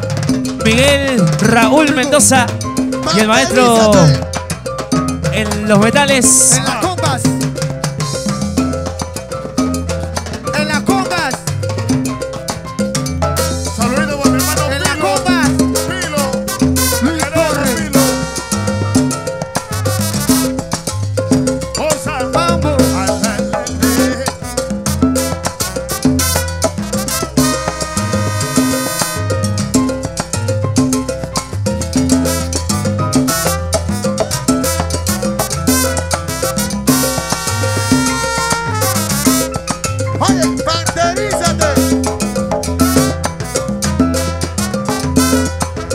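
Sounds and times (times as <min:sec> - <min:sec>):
bass: 0:00.0 - 0:45.9
congas: 0:00.0 - 0:45.9
piano: 0:00.0 - 0:45.9
brass section held chords: 0:15.8 - 0:20.6, 0:23.0 - 0:29.8, 0:35.7 - 0:39.6.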